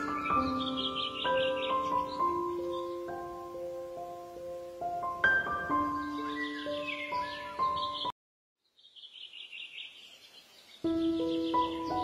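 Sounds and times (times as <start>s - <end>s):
soft instrumental music: 0.0s - 8.1s, 10.8s - 12.0s
songbird chirping trill: 0.0s - 12.0s.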